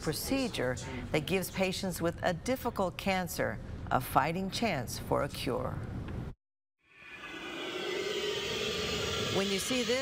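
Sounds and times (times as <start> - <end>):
steady rushing drone with hum: 7.1 - 10.0.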